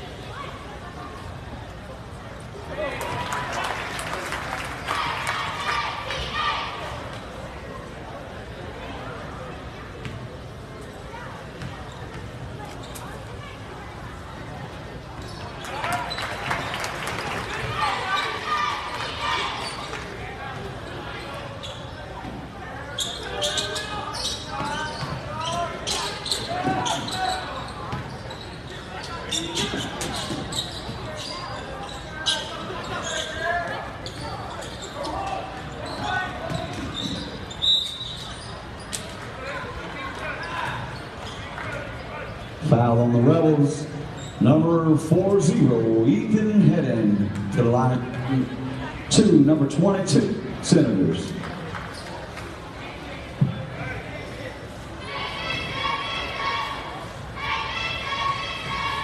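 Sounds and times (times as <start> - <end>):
crowd voices: 0.0 - 59.0
shoe squeaks: 11.6 - 13.2, 15.2 - 16.3, 21.1 - 39.2, 40.2 - 42.6, 44.1 - 44.5.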